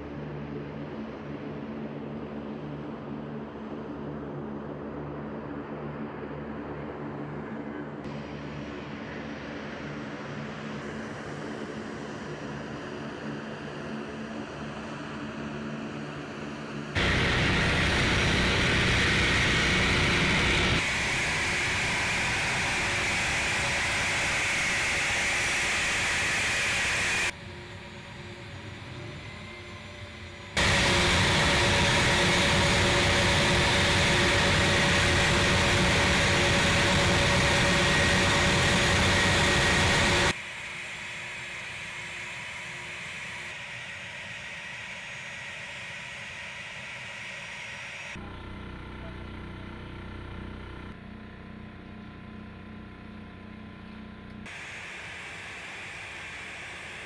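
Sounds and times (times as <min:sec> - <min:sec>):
jet engines running: 0:06.9 - 0:48.3, 0:54.4 - 0:57.0.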